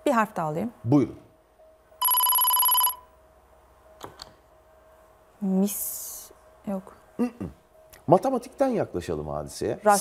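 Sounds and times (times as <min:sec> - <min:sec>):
electronic bell ring with flutter: 0:02.0 - 0:03.1.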